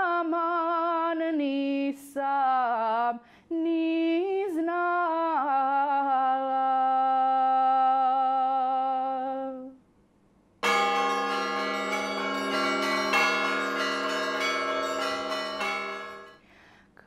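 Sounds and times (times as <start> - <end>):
church bells ringing: 10.6 - 16.4.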